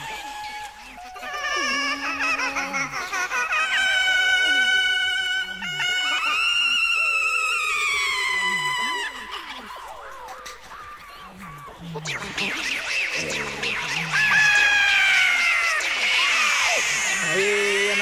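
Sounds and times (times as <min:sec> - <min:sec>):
high wavering wailing voice: 0:00.0 - 0:18.0.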